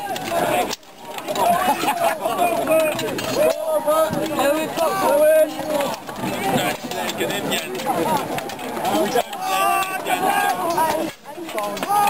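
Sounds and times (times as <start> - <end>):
men calling and chattering: 0.0 - 12.0.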